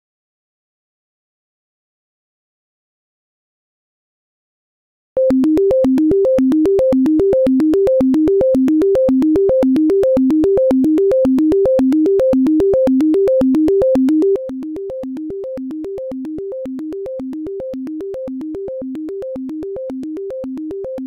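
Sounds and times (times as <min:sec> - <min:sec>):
synthesizer arpeggio: 0:05.2 - 0:21.0.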